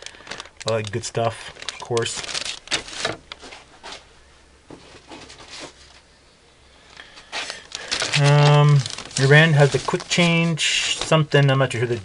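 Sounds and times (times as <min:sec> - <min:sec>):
plastic bags crinkling: 0:00.0 - 0:03.7, 0:07.2 - 0:12.0.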